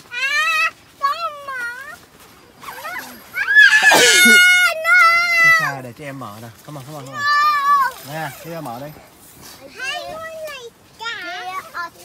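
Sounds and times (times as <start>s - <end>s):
child squealing: 2.7s - 5.6s.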